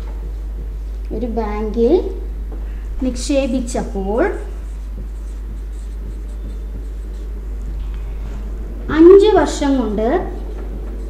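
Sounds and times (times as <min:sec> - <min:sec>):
steady low hum: 0:00.0 - 0:11.0
marker pen on whiteboard: 0:03.0 - 0:11.0.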